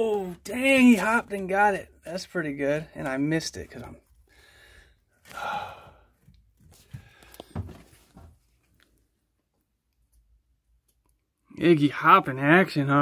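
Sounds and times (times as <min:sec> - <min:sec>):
person exhaling breathily: 0:04.4 - 0:06.2
faint clicks and soft knocks: 0:06.2 - 0:11.5.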